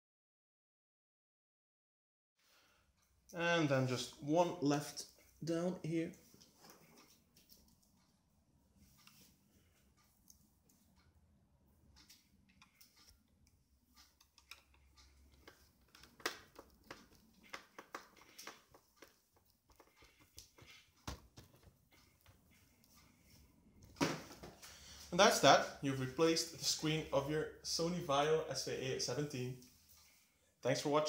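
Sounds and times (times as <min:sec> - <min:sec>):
screwdriver ticking and scraping: 0:11.8 - 0:23.2.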